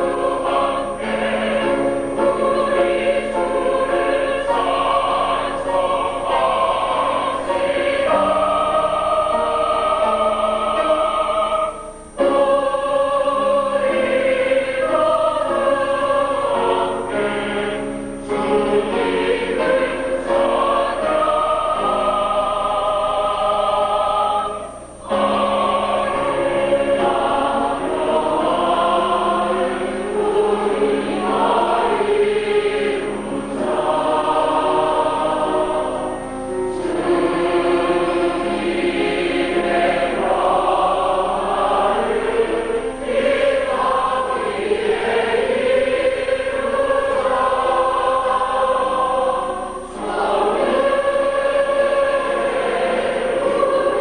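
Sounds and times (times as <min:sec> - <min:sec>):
mixed choir singing: 0:00.0 - 0:54.0.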